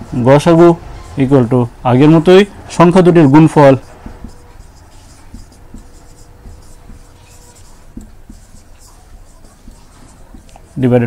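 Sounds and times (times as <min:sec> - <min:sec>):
marker pen squeaking on whiteboard: 0:03.0 - 0:11.0
pen tapping on whiteboard: 0:03.8 - 0:10.8.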